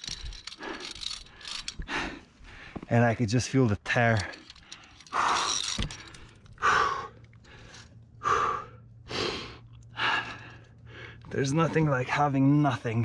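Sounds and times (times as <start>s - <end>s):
person breathing heavily: 0.0s - 2.9s, 4.3s - 11.3s.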